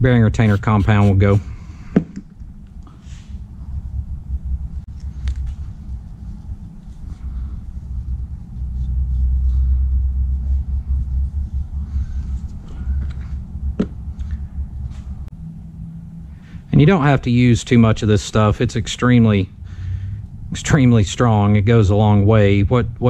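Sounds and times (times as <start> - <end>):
low steady rumble: 0.0 - 23.0.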